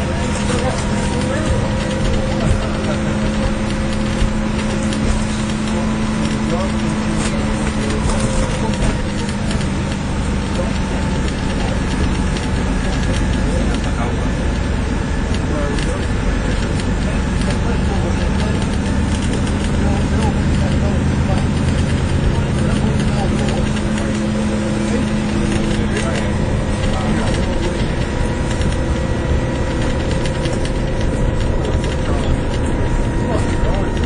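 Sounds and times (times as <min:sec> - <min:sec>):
bus engine running: 0:00.0 - 0:34.0
passenger chatter: 0:00.0 - 0:34.0
road noise: 0:00.0 - 0:34.0.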